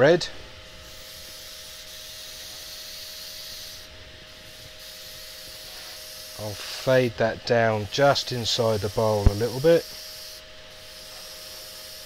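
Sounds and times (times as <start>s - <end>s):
lathe humming: 0.0s - 11.9s
airbrush hissing: 0.6s - 12.0s.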